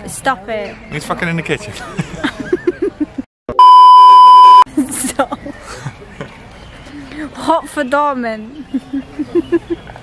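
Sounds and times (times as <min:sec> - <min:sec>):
people laughing: 0:01.7 - 0:03.3, 0:04.7 - 0:06.4, 0:08.6 - 0:10.0
high-pitched censor beep: 0:03.5 - 0:04.6.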